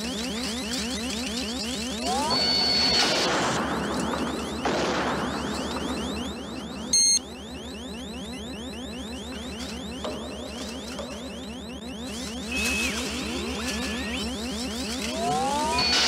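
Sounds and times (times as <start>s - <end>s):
loud electronic beep: 0.0s - 16.0s
rising electronic chirps: 0.0s - 16.0s
held tone dropping in pitch: 1.6s - 3.2s, 3.8s - 16.0s.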